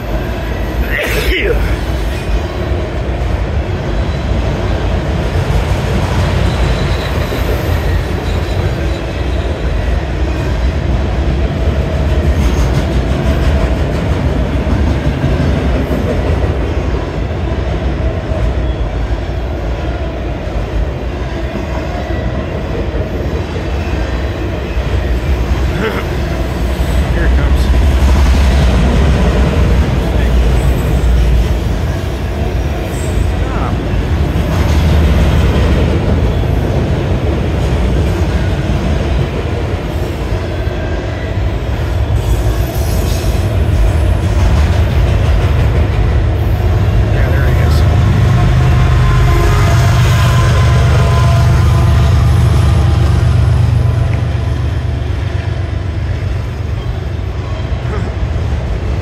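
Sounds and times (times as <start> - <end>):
steel wheels on rails: 0.0 - 59.0.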